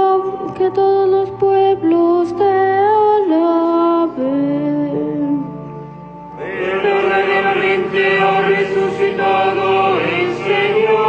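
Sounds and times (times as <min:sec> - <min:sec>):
voices chanting: 0:06.4 - 0:11.0.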